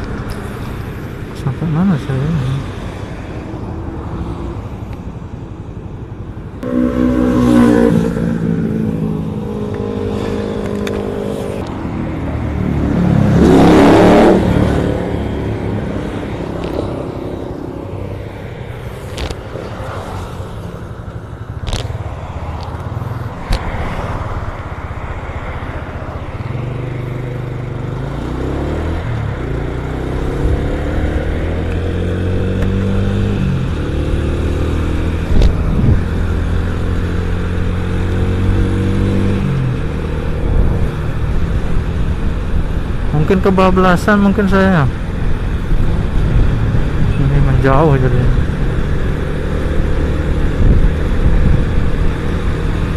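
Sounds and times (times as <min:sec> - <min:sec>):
motorcycle accelerating: 0:06.4 - 0:52.9
vehicle passing: 0:06.4 - 0:52.9.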